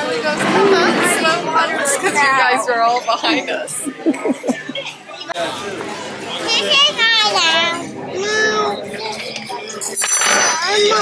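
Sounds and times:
restaurant chatter: 0:00.0 - 0:11.0.

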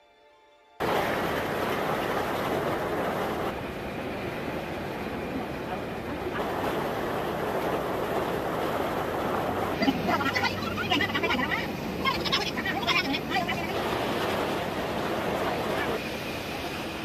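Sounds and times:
water rushing over rocks: 0:00.8 - 0:17.0.

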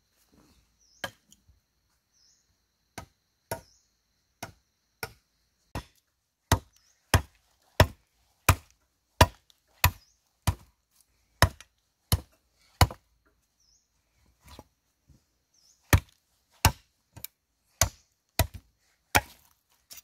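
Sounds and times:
machete chopping bamboo: 0:03.0 - 0:03.7, 0:04.4 - 0:10.7, 0:11.4 - 0:13.0, 0:15.9 - 0:20.0.

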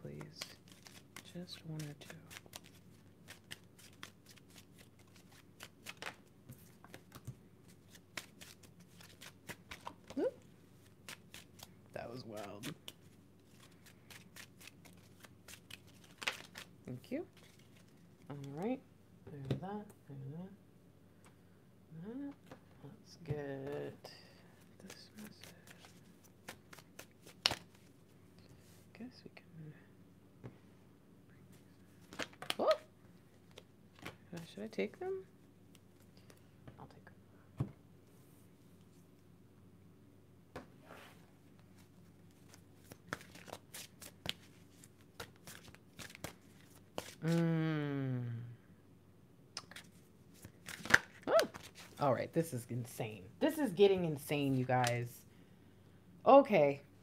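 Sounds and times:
cards shuffled by hand: 0:00.1 - 0:18.6, 0:24.6 - 0:28.0, 0:32.0 - 0:32.6, 0:33.4 - 0:34.6, 0:41.8 - 0:47.5, 0:49.6 - 0:52.0.

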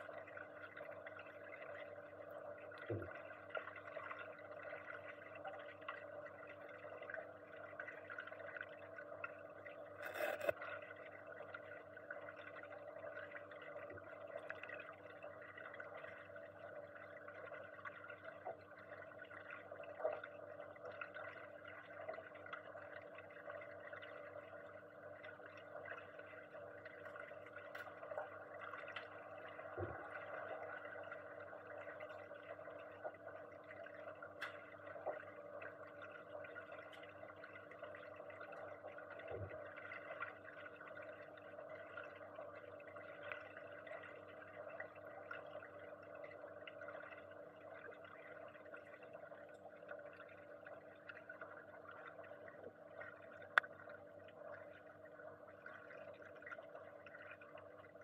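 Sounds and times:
underwater hum: 0:00.0 - 0:58.0.

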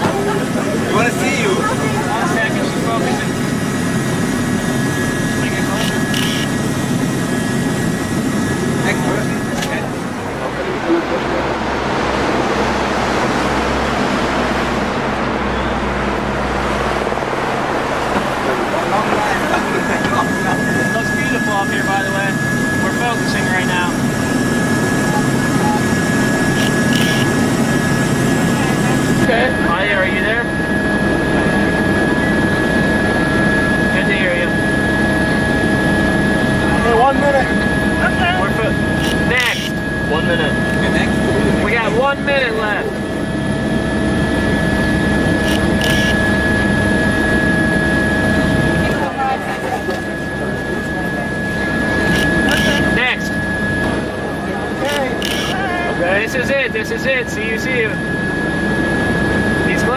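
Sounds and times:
people talking: 0:00.0 - 0:07.6, 0:08.5 - 0:14.0, 0:18.0 - 0:43.4, 0:47.5 - 0:58.2, 0:59.5 - 0:59.9
helicopter engine and rotor drone: 0:00.0 - 0:59.9.

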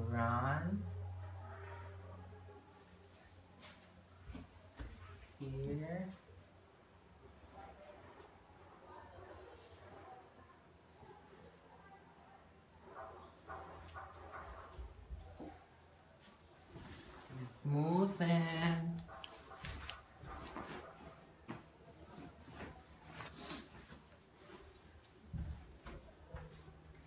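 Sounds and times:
bed cover rustling: 0:16.2 - 0:26.7.

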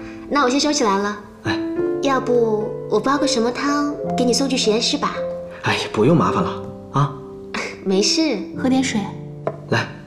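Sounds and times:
dialogue: 0:00.0 - 0:10.0
soft background music: 0:00.0 - 0:10.0.

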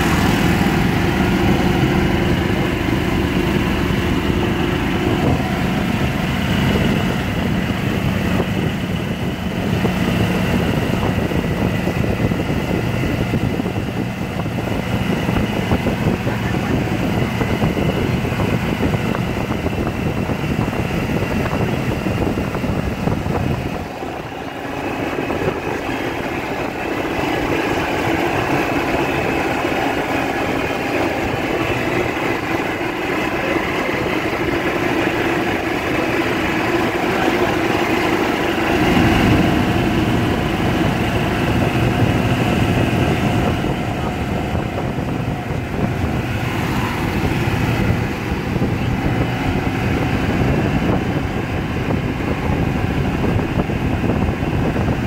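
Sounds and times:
golf cart motor hum: 0:00.0 - 0:55.0
low rumble: 0:00.0 - 0:55.0
road and wind noise: 0:00.0 - 0:55.0.

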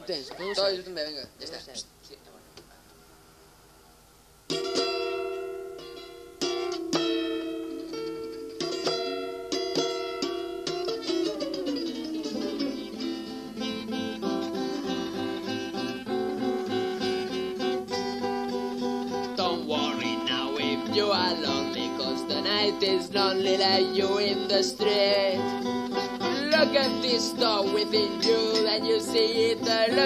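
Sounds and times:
strummed acoustic guitar: 0:04.5 - 0:30.0.

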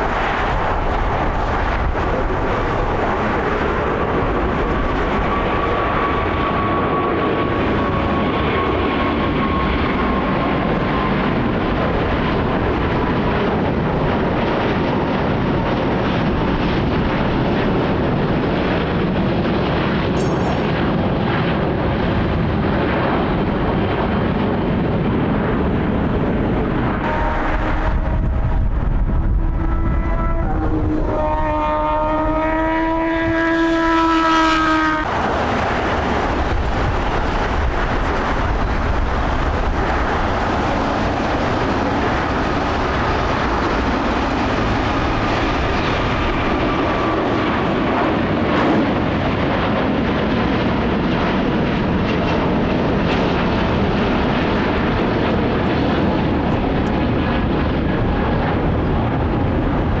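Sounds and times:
jet takeoff roar: 0:00.0 - 1:00.0.

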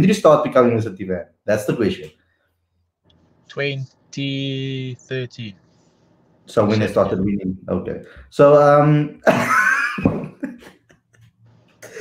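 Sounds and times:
man laughing: 0:09.2 - 0:12.0.

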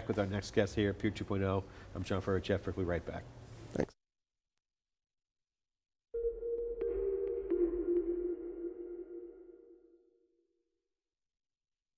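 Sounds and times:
held low synth tone: 0:06.2 - 0:10.4.

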